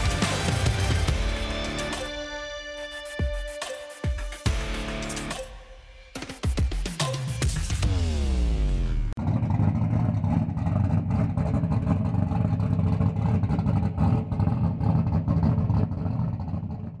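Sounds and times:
race car engine running: 0.0s - 2.0s, 7.8s - 17.0s.

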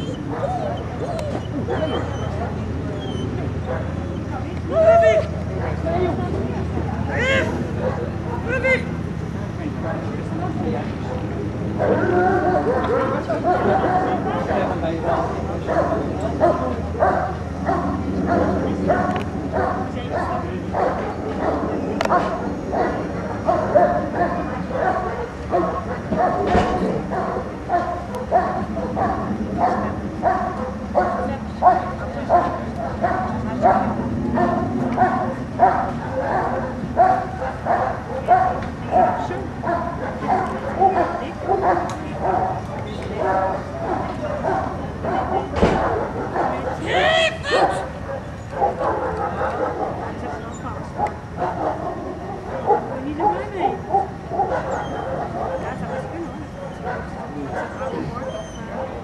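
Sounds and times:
dog barking: 1.7s - 4.0s, 7.8s - 8.5s, 15.2s - 59.0s.

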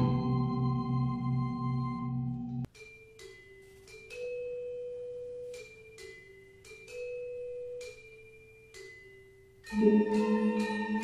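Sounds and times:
bronze gamelan notes ringing: 0.0s - 11.0s.

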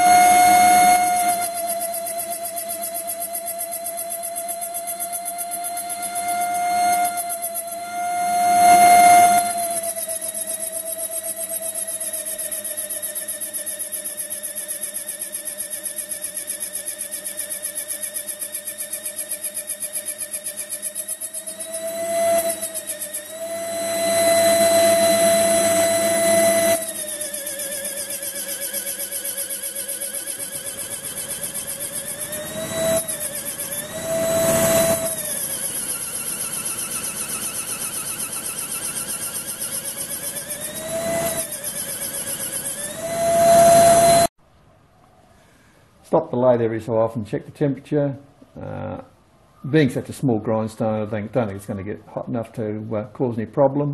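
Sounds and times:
air die grinder whining: 0.0s - 44.3s.

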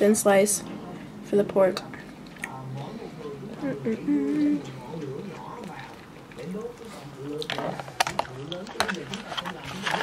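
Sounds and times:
faint low talk: 0.4s - 10.0s.

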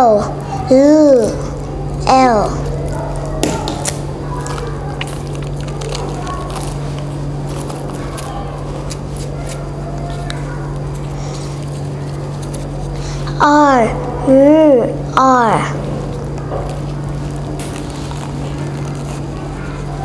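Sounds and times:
steady low hum: 0.0s - 20.0s
small ticks and crackles: 2.5s - 13.2s.

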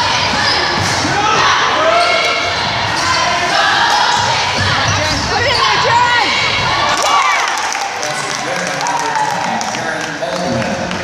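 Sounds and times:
sneakers squeaking: 0.0s - 7.1s
voices and shouts of people: 0.0s - 9.7s.

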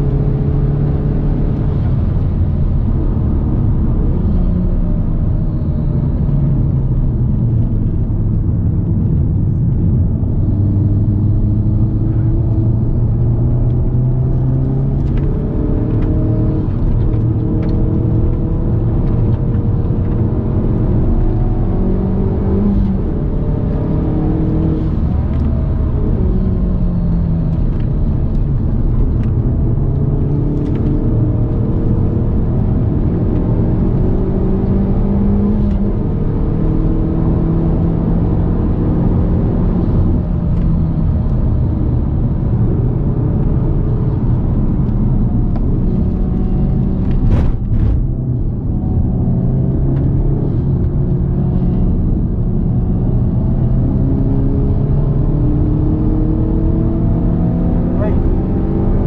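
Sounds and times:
car engine accelerating: 0.0s - 59.0s.

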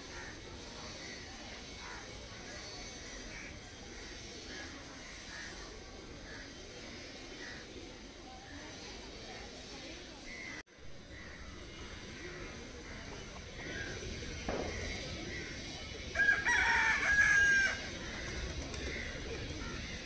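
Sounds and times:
rooster crowing: 16.1s - 18.0s.

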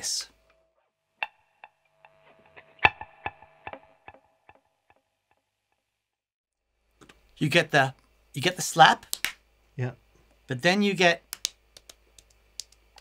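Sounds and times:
electric guitar with delay: 2.0s - 5.0s.

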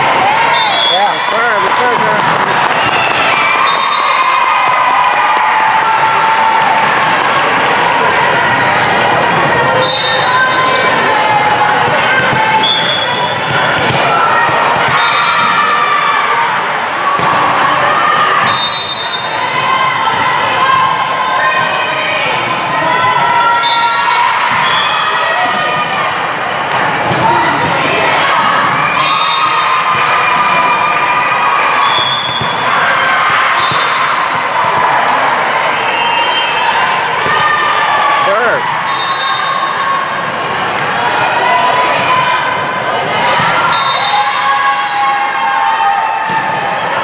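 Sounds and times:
volleyball slaps and bounces: 11.8s - 15.5s, 17.1s - 17.5s, 26.7s - 27.9s, 29.8s - 30.6s, 31.8s - 35.2s, 46.3s - 46.6s.

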